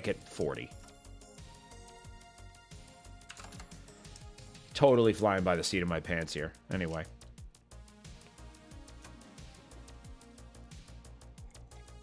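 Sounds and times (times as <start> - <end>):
synthwave background music: 0.0 - 12.0.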